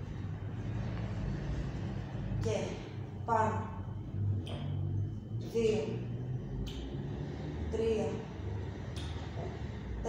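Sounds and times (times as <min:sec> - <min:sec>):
low rumble of background noise: 0:00.0 - 0:10.0.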